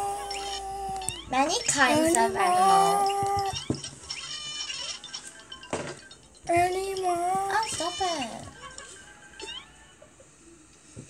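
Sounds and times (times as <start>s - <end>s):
cartoon animal calls: 0.0s - 5.1s
light background music: 0.0s - 11.0s.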